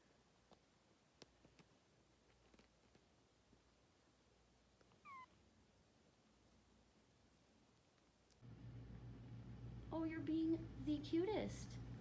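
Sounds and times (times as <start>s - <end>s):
kitten mewing: 4.9s - 5.4s.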